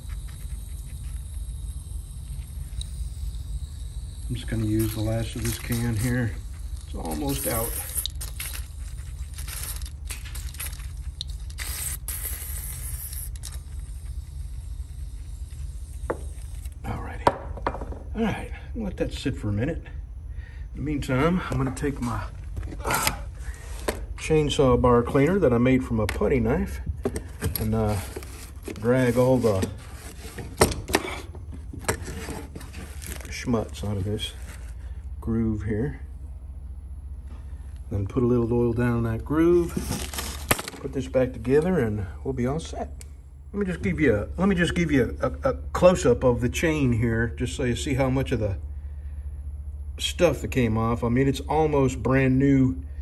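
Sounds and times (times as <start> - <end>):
aerosol spray hiss bursts: 0.0 - 9.3, 10.9 - 16.7
steady low hum: 0.0 - 53.0.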